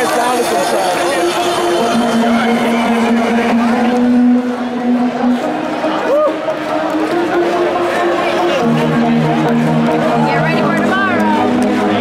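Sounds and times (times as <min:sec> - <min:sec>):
electronic dance music: 0:00.0 - 0:12.0
crowd shouting: 0:01.0 - 0:11.5.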